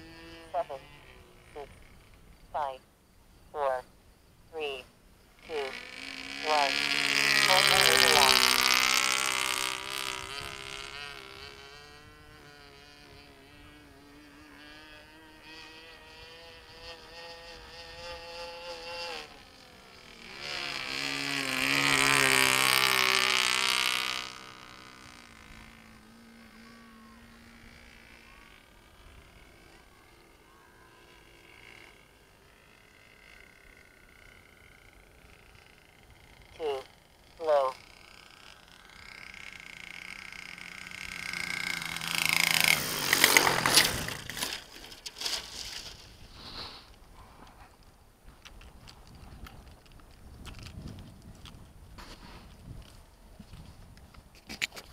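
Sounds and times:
model airplane engine buzzing: 0.0 - 2.8, 4.6 - 47.6
plane landing on grass: 17.0 - 49.3.

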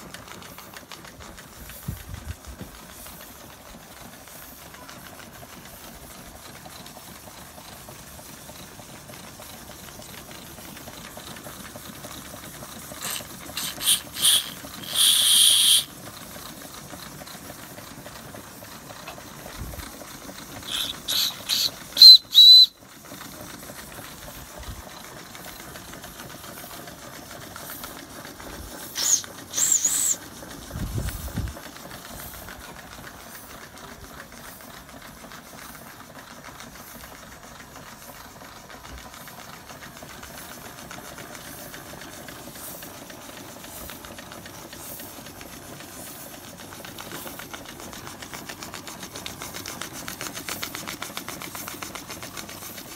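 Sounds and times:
hiss of escaping steam: 0.0 - 37.2
shrill steam whistle blasts: 13.0 - 15.9, 20.6 - 22.8, 29.0 - 30.2.

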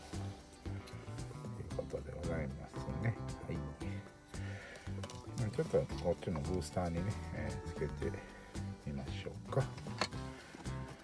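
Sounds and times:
background music: 0.0 - 11.0
man talking: 1.5 - 4.1, 5.2 - 9.9.

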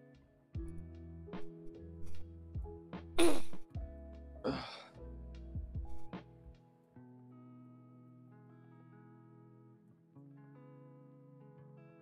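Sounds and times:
person clearing throat: 3.2 - 3.6, 4.5 - 4.9.

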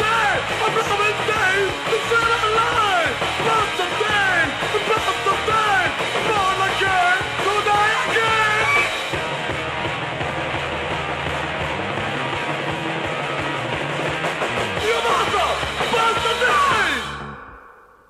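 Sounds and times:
punk rock band playing: 0.0 - 18.0.

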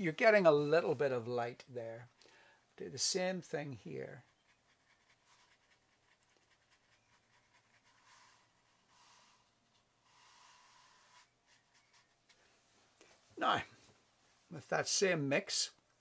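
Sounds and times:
brush swishing on wet paper: 4.2 - 12.9.

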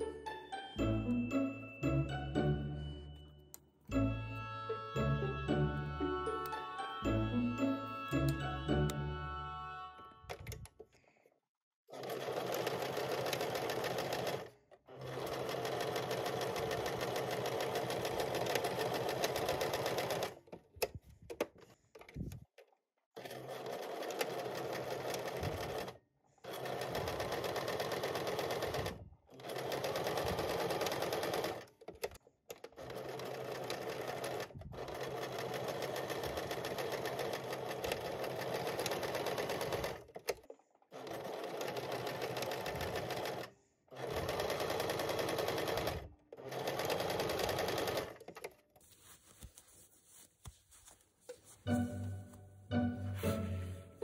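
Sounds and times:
sewing machine stitching: 11.9 - 20.6, 23.2 - 48.6.

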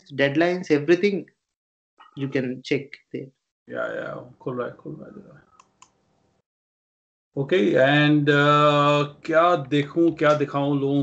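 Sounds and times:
computer mouse clicks: 5.5 - 6.0.

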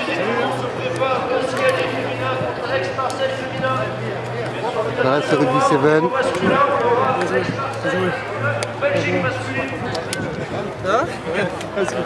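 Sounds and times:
men's voices calling out: 0.0 - 12.0.

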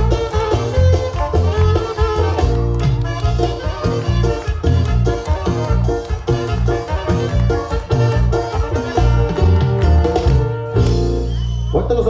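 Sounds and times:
live band playing dance music: 0.0 - 12.0.

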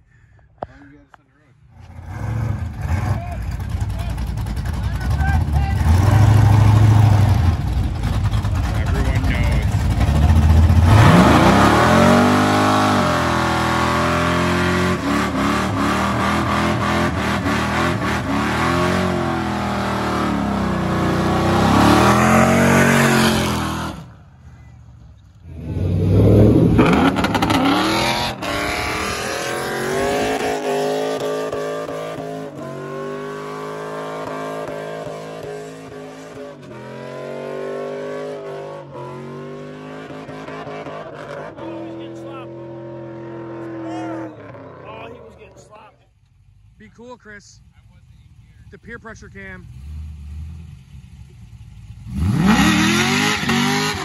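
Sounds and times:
car engines revving: 0.6 - 54.0.

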